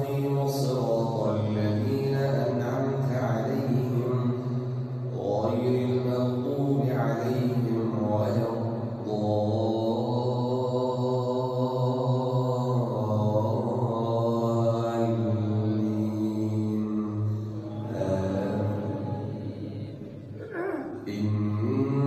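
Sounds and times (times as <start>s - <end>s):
man chanting melodically: 0.0s - 20.1s, 20.9s - 22.0s.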